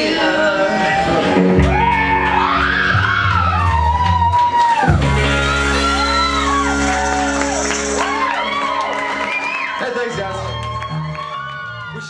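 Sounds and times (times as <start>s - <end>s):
live rock band: 0.0s - 12.0s
high sliding guitar notes: 4.9s - 9.4s.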